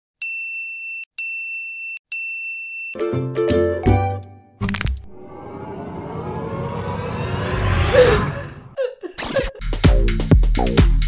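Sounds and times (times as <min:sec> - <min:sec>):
high bell-like dings: 0:00.2 - 0:03.1.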